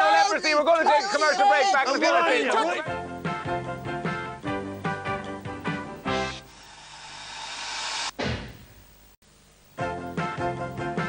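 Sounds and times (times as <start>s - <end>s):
rising whooshing hiss: 6.0s - 8.7s.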